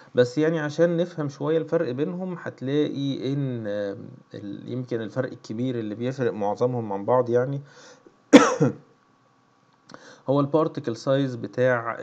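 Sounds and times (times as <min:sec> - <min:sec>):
man coughing: 0:08.3 - 0:08.9.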